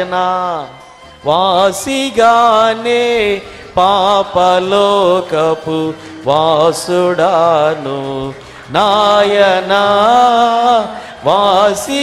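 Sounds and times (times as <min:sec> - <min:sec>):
man singing into a microphone: 0:00.0 - 0:12.0
man breathing: 0:03.4 - 0:03.8, 0:05.9 - 0:06.2, 0:08.3 - 0:08.7, 0:10.9 - 0:11.2.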